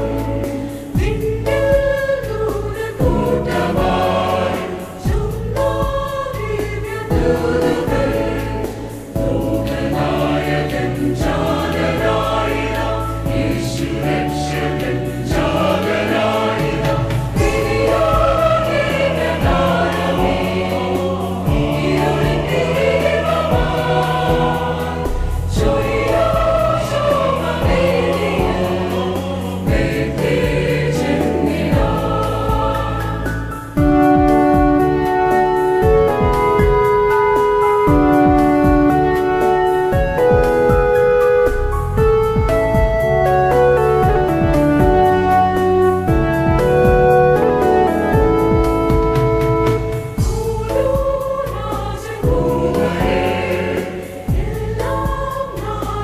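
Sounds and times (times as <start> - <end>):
choir singing in harmony: 0.0 - 56.0.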